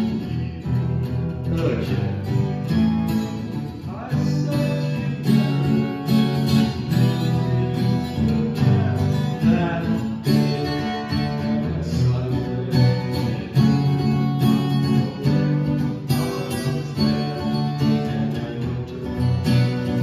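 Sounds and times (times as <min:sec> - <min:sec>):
acoustic guitar chords: 0:00.0 - 0:20.0.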